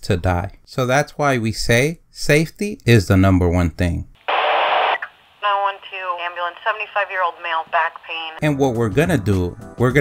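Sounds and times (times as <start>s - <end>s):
radio static burst: 4.2s - 8.4s
voice through tinny radio speaker: 5.4s - 8.4s.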